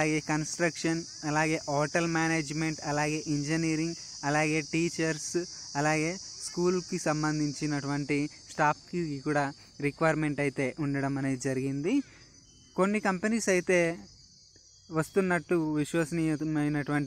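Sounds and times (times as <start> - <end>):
man narrating: 0.0 - 12.1, 12.8 - 14.0, 14.9 - 17.0
high-pitched hiss: 0.0 - 17.0.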